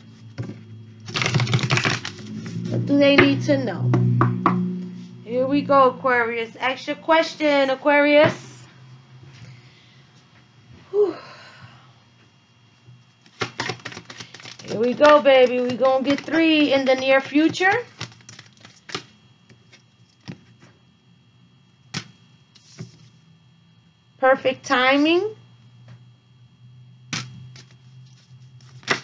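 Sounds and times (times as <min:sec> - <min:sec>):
faint low hum: 0:00.0 - 0:29.0
cards being shuffled: 0:00.4 - 0:02.8, 0:13.2 - 0:20.4, 0:22.0 - 0:23.1, 0:27.1 - 0:29.0.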